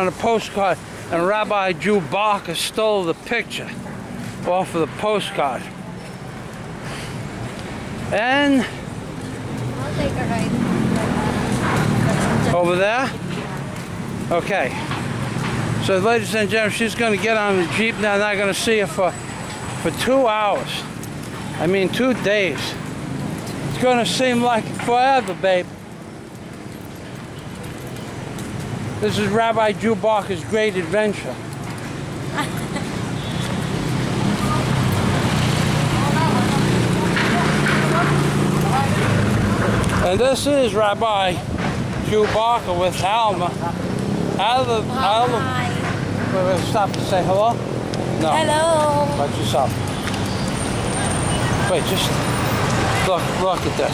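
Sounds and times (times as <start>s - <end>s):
road traffic: 0.0s - 53.9s
vehicle engine rumbling: 0.0s - 53.9s.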